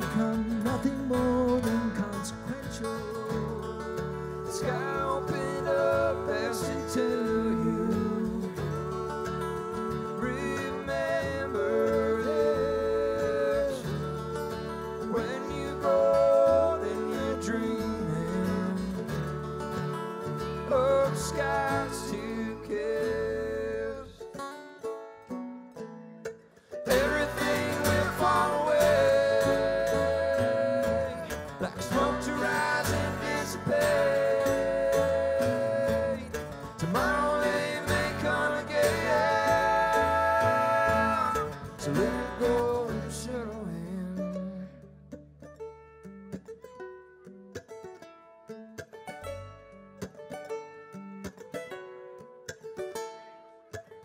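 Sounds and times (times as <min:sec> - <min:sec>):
person singing: 0:00.0 - 0:24.2, 0:26.8 - 0:44.9
acoustic guitar: 0:00.0 - 0:54.0
banjo: 0:00.0 - 0:54.0
bluegrass band playing: 0:00.0 - 0:54.0
mandolin: 0:00.0 - 0:54.0.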